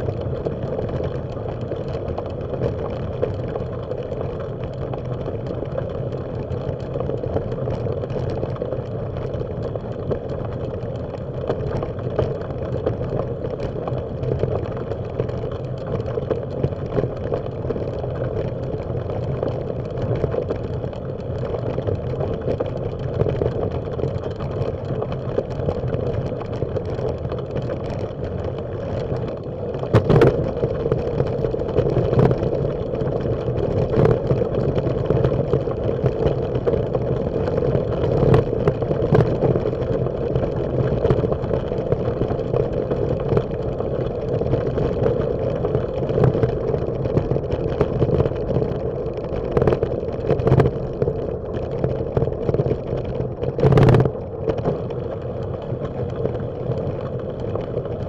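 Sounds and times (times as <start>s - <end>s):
bicycle rolling on gravel: 0.0s - 58.0s.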